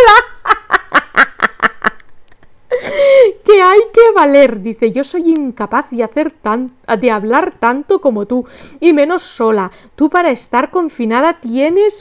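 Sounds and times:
woman laughing heartily: 0:00.0 - 0:03.4.

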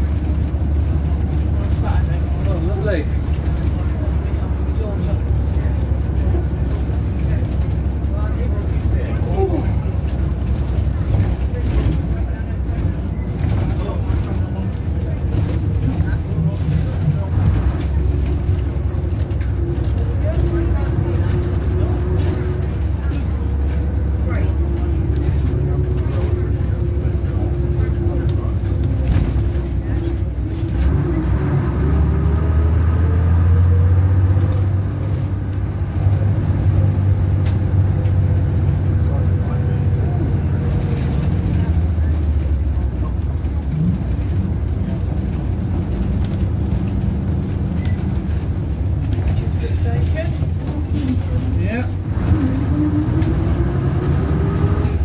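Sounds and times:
bus diesel engine drone: 0:00.0 - 0:55.0.

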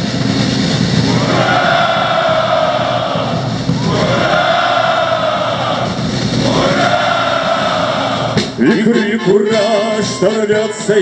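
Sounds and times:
accompanying music: 0:01.1 - 0:11.0.

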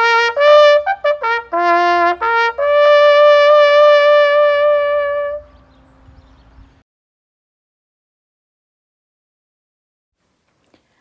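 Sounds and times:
bugle holding a long note: 0:00.0 - 0:05.5.

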